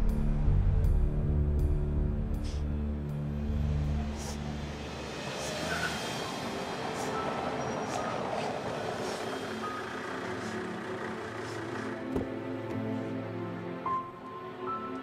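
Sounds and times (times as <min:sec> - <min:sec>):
low droning music: 0:00.0 - 0:15.0
car driving on cobblestones: 0:03.9 - 0:13.2.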